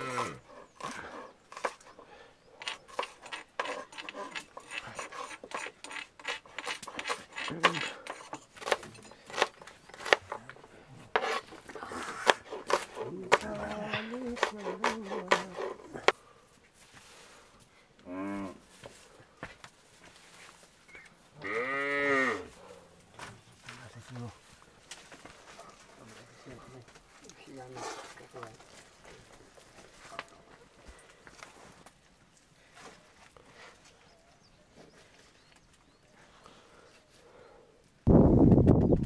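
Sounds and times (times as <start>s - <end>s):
cow mooing: 0.0s - 0.4s, 21.4s - 22.5s
knife slicing onions on board: 2.6s - 10.3s, 11.1s - 11.5s, 12.2s - 13.7s, 14.3s - 16.1s.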